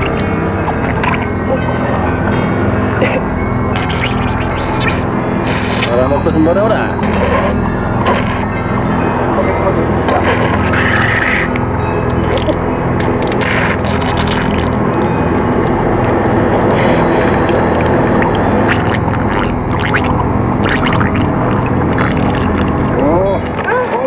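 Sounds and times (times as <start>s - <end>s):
dense droning rumble: 0.0s - 24.0s
warbling sliding tones: 0.0s - 24.0s.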